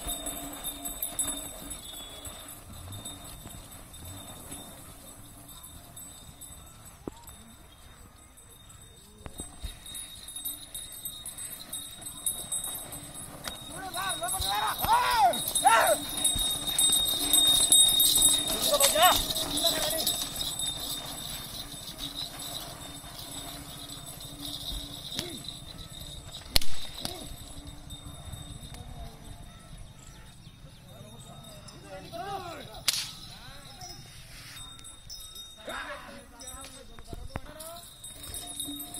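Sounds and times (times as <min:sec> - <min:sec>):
hooves beating on dirt track: 0:00.0 - 0:38.9
low rumble of bull team: 0:00.0 - 0:38.9
men shouting: 0:13.7 - 0:16.1
whip cracking: 0:32.8 - 0:33.2.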